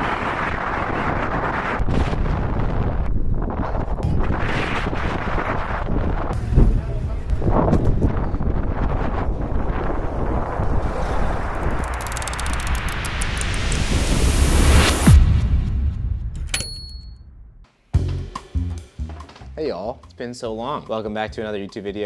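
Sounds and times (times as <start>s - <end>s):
wind buffeting microphone: 0.0s - 14.4s.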